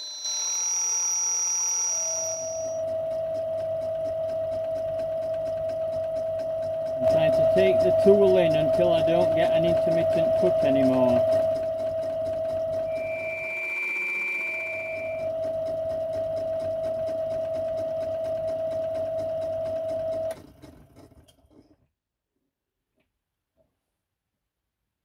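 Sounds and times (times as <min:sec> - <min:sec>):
lathe tool cutting metal disc: 0:00.0 - 0:02.9, 0:06.2 - 0:17.7
high ringing tone: 0:00.0 - 0:20.3
metal lathe motor whine: 0:00.0 - 0:20.3
lathe running down: 0:00.0 - 0:20.6.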